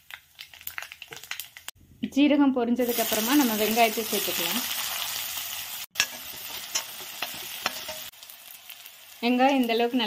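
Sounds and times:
seeds spluttering in hot oil: 0.0s - 1.8s, 2.8s - 10.0s.

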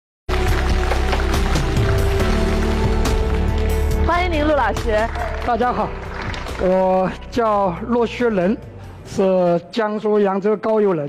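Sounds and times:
background music with steady beat: 0.3s - 11.0s.

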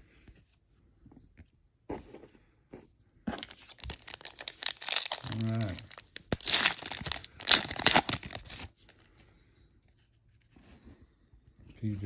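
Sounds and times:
foil wrapper tearing and crinkling: 3.4s - 8.9s.

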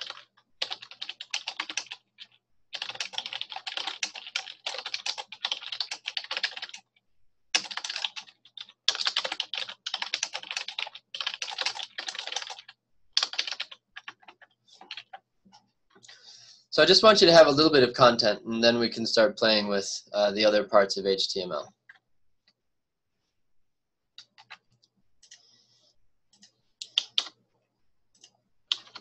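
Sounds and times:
computer keyboard typing: 0.0s - 15.2s, 24.2s - 25.4s, 26.3s - 27.4s, 28.1s - 29.0s.

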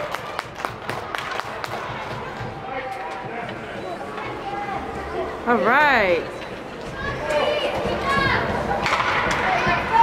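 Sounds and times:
indoor hall din: 0.0s - 10.0s
voices shouting: 6.6s - 10.0s.

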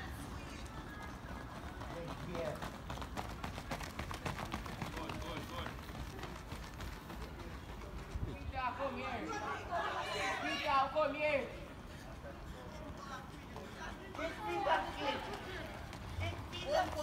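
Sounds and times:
runners' footfalls on track: 0.0s - 17.0s.

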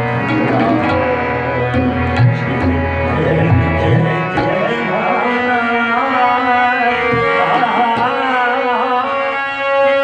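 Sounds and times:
tabla bass drum strokes: 0.0s - 4.8s
harmonium chords: 0.0s - 10.0s
man singing: 0.1s - 10.0s.

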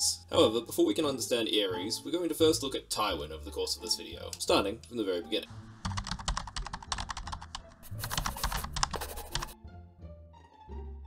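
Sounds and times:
low background music: 0.0s - 11.0s
keyboard typing clicks: 5.9s - 9.6s.

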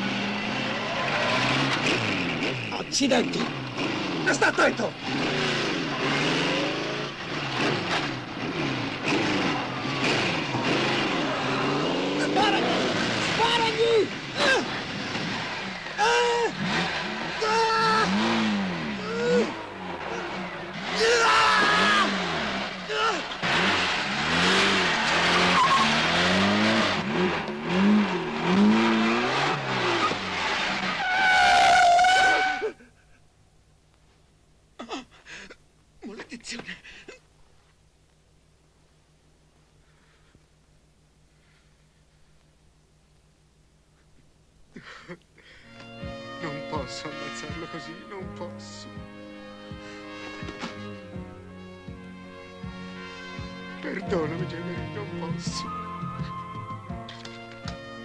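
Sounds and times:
motorcycle engines revving: 0.0s - 32.8s, 46.0s - 58.0s
tyres skidding and squealing: 0.0s - 32.9s.

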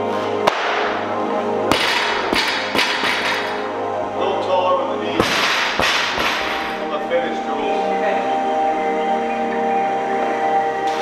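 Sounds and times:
background music with beat: 0.0s - 11.0s.

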